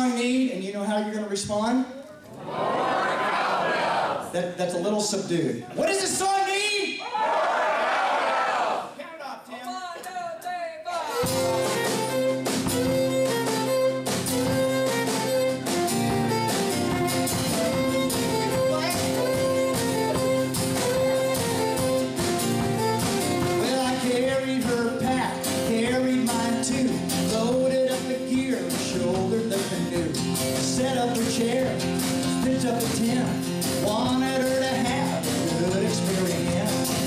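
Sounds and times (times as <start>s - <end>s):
bowed fiddle: 11.1s - 23.8s
strummed acoustic guitar: 11.1s - 37.0s.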